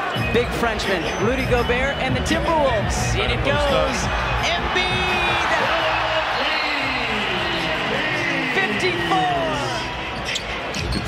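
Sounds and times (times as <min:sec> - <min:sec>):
crowd din: 0:00.0 - 0:11.0
sneakers squeaking on hardwood: 0:09.9 - 0:11.0.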